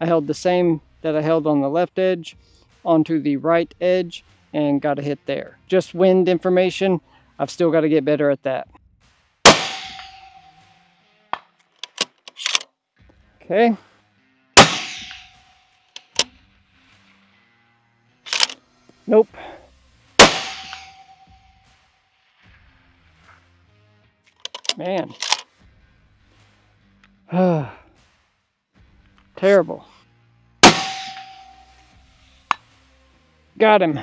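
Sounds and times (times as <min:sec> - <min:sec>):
rifle shot: 0:09.4 - 0:10.6, 0:14.6 - 0:15.4, 0:20.2 - 0:21.4, 0:30.6 - 0:31.8
bullet pinging steel target: 0:09.4 - 0:10.7, 0:14.6 - 0:16.3, 0:20.2 - 0:21.6, 0:30.6 - 0:32.6
rifle bolt clicking: 0:11.8 - 0:12.6, 0:16.0 - 0:16.3, 0:18.3 - 0:18.6, 0:24.4 - 0:25.4.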